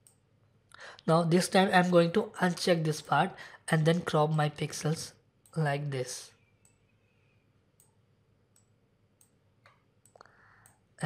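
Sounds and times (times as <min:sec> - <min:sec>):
computer mouse clicks: 0:00.0 - 0:00.2, 0:06.4 - 0:10.8.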